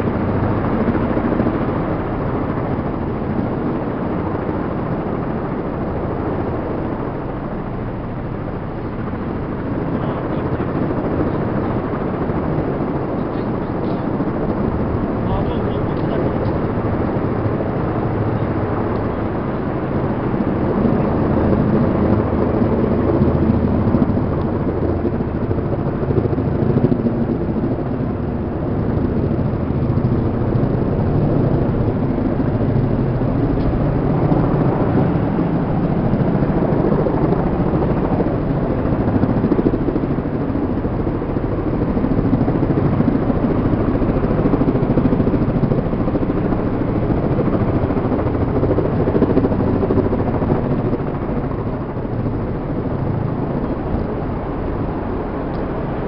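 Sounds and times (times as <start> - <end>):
helicopter rotor and engine: 0.0 - 56.0.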